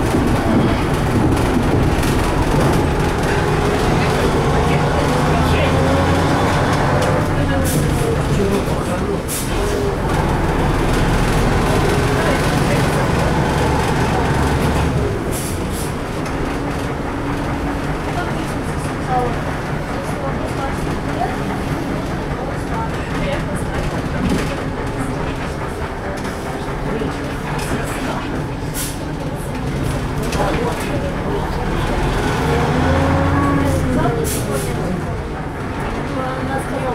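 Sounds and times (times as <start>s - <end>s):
bus cabin rattling and rumbling: 0.0s - 36.9s.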